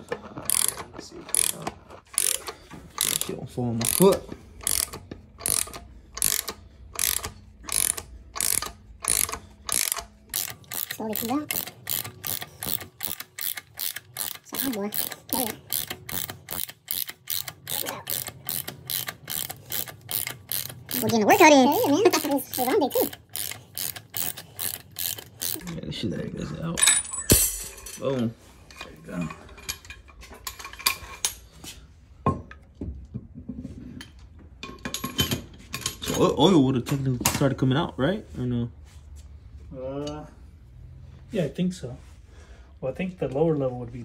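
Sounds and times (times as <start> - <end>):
ratchet wrench clicking: 0.5 - 25.8.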